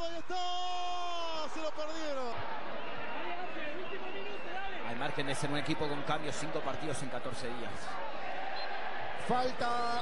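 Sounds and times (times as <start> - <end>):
man commentating: 0.0 - 2.5, 9.2 - 10.0
stadium crowd noise: 0.0 - 10.0.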